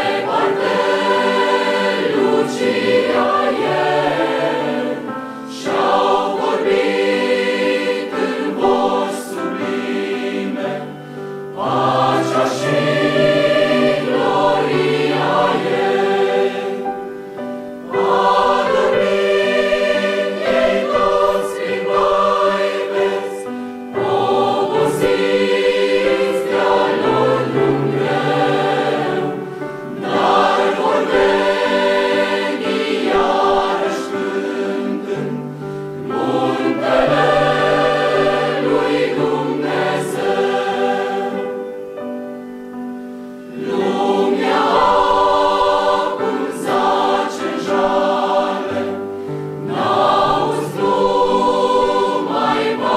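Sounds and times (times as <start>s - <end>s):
mixed choir singing: 0.0s - 42.3s, 43.1s - 52.9s.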